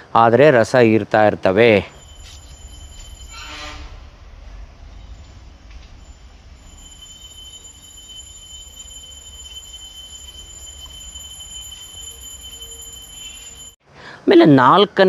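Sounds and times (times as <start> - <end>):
high-pitched whine: 1.7 - 13.8
low rumble: 1.9 - 12.5.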